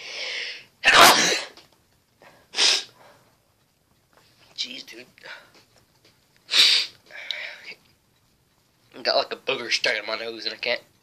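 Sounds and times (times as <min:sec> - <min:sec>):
man sneezing: 0:00.8 - 0:01.6.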